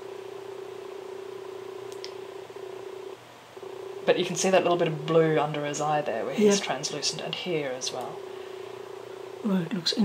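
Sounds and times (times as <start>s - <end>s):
steady low hum: 0.0s - 10.0s
faint high tick: 1.9s - 2.2s.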